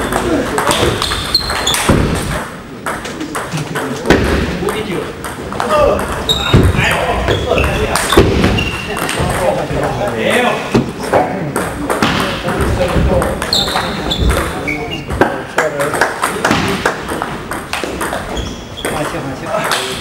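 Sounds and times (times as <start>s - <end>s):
table tennis balls clicking: 0.0s - 10.2s, 11.0s - 20.0s.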